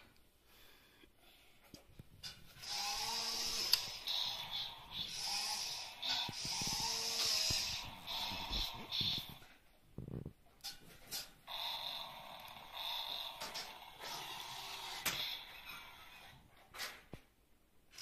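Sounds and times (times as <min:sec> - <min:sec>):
toy electric motor whirring: 0:02.6 - 0:09.4, 0:11.5 - 0:16.5.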